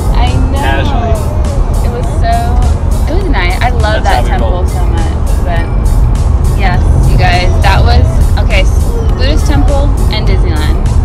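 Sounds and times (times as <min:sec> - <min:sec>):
person speaking: 0:00.0 - 0:01.2, 0:01.9 - 0:05.6
car road rumble: 0:00.0 - 0:11.0
music with a regular beat: 0:00.0 - 0:11.0.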